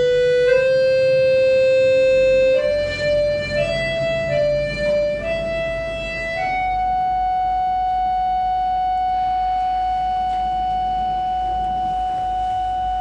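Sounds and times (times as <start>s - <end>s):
button accordion long high note: 0.0s - 13.0s.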